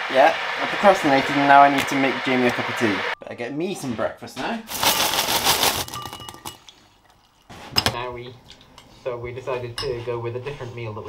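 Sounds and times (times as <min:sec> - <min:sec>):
cereal pouring into bowl: 0:04.7 - 0:06.3.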